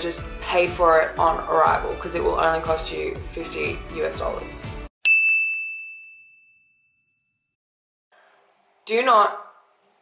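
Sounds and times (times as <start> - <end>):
bright bell ding: 5.0 - 7.5.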